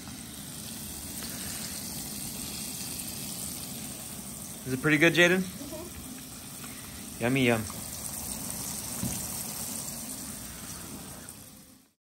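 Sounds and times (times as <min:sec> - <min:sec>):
fish sizzling in hot oil: 0:00.0 - 0:12.0.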